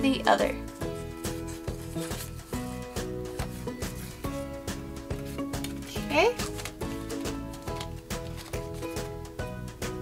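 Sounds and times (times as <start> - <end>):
instrumental music with steady beat: 0.0 - 10.0.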